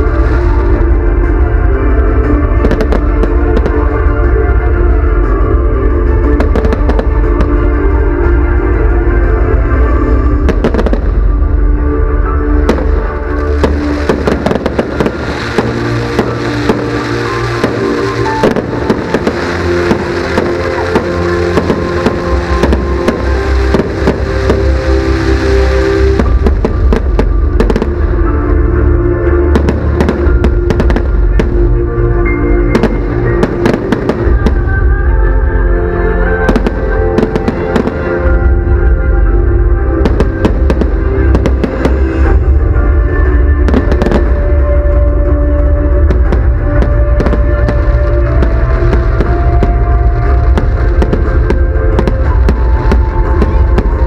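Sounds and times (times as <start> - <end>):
fireworks crackling: 0.0 - 11.6, 12.2 - 54.0
loud music: 0.0 - 54.0
fireworks bangs: 12.6 - 28.2, 29.5 - 31.8, 32.7 - 34.8, 36.4 - 38.7, 39.9 - 42.9, 43.6 - 54.0.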